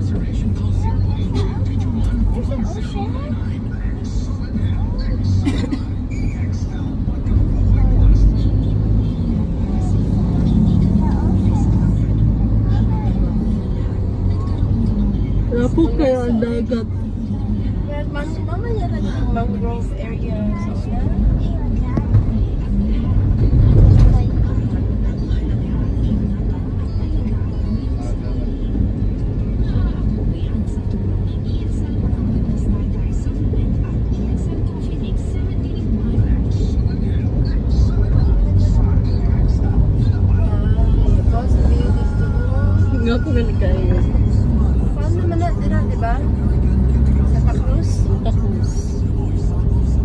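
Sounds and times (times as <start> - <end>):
car road and engine rumble: 0.0 - 50.0
faint music: 0.0 - 50.0
indistinct voices: 0.0 - 50.0.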